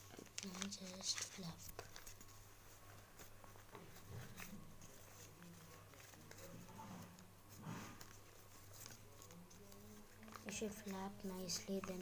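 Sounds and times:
paper crackling: 0:00.0 - 0:07.3, 0:08.0 - 0:12.0.

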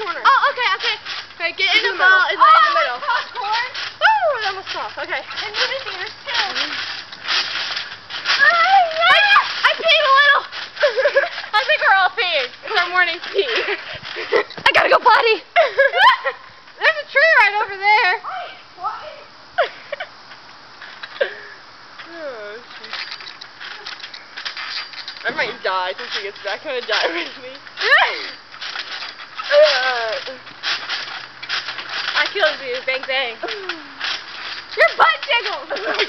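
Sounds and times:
girls squealing and laughing: 0:00.0 - 0:06.8, 0:08.2 - 0:20.2, 0:27.0 - 0:28.4, 0:33.3 - 0:36.0
trampoline springs creaking: 0:00.0 - 0:36.0.

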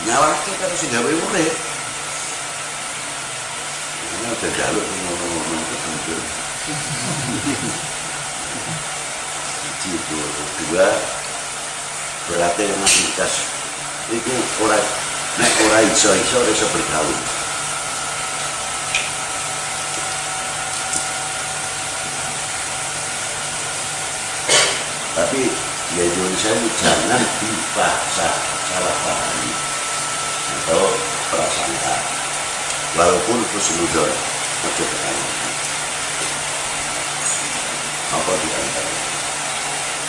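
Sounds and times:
low even hum: 0:00.0 - 0:39.6
steady hiss: 0:00.0 - 0:40.0.

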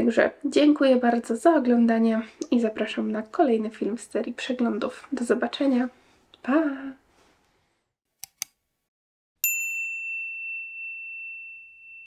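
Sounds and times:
bright bell ding: 0:09.4 - 0:12.0.

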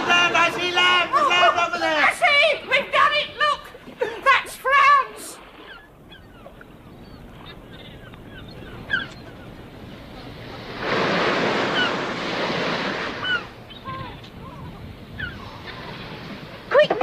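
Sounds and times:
sea waves washing onto shore: 0:07.4 - 0:17.0.

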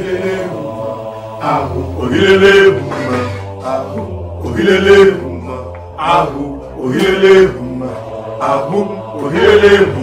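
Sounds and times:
male voices chanting: 0:00.0 - 0:10.0.

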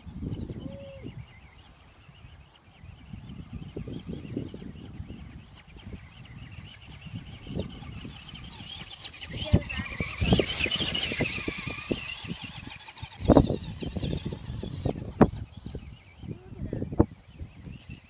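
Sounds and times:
toy truck motor whine: 0:00.0 - 0:18.0.

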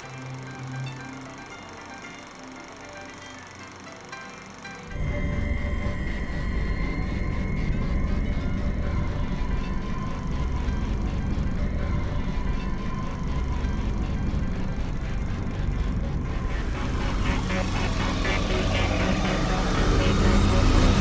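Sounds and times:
fast ticking pulse: 0:00.0 - 0:21.0
dramatic film score music: 0:00.1 - 0:21.0
deep rumbling drone: 0:04.9 - 0:21.0.

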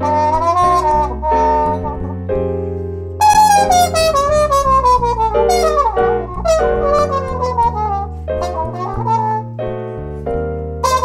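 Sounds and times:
jazz trumpet solo: 0:00.0 - 0:02.6, 0:03.2 - 0:09.6
bass: 0:00.0 - 0:11.0
piano chords: 0:00.0 - 0:11.0.

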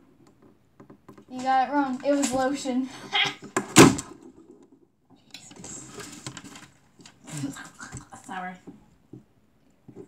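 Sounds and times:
loud sharp thump: 0:03.7 - 0:04.1.

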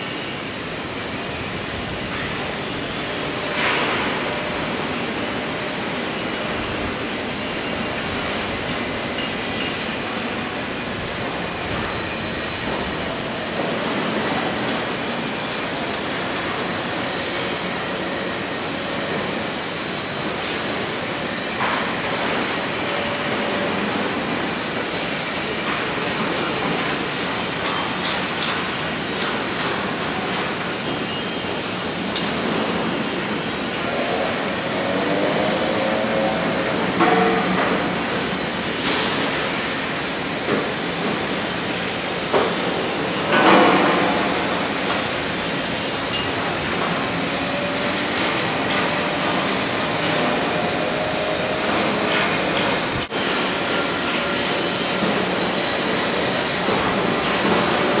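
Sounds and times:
construction site rumble and hiss: 0:00.0 - 0:58.0
machinery whine: 0:00.0 - 0:58.0.

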